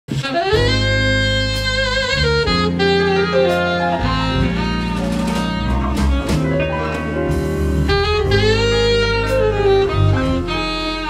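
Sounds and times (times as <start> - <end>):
alto saxophone melody: 0.1 - 11.0
jazz band accompaniment: 0.1 - 11.0.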